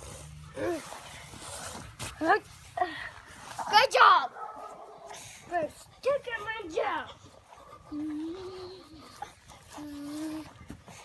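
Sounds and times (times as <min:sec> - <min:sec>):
child's high-pitched vocal sounds: 0:07.9 - 0:10.6.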